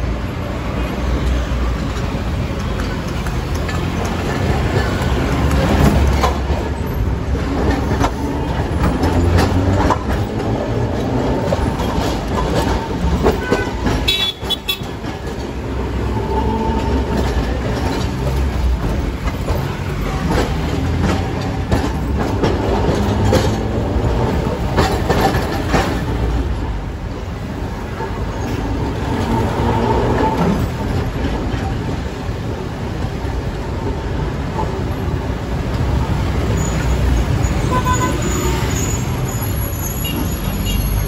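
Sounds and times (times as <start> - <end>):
tram wheels rumbling on rails: 0.0 - 41.0
wheels clicking over rail joints: 0.6 - 41.0.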